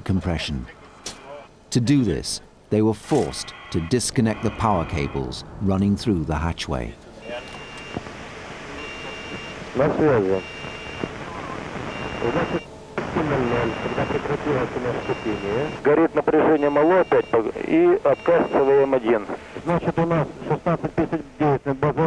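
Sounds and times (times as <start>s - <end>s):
men talking: 0.0s - 8.0s, 8.8s - 10.6s, 12.0s - 22.0s
electronic alarm beeping: 3.1s - 5.6s, 7.2s - 8.0s, 8.7s - 12.7s, 13.3s - 15.8s, 16.5s - 19.1s.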